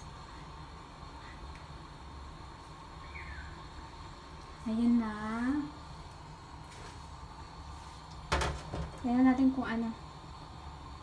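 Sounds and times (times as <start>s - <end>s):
faint low hum or hiss: 0.0s - 11.0s.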